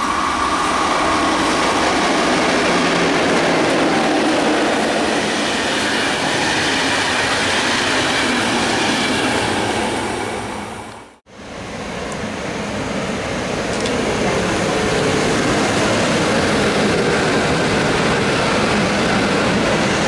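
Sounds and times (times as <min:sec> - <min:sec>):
train passing at speed: 0:00.0 - 0:20.0.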